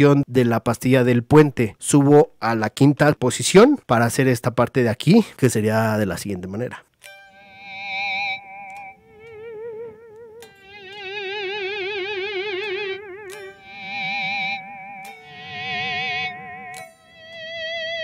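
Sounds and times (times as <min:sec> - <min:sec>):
electric guitar harmonics with tremolo: 0:07.1 - 0:18.0.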